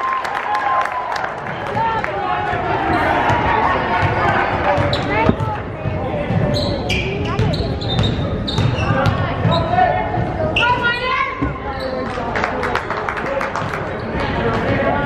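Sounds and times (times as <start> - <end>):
voices echoing in gym: 0.9 - 15.0.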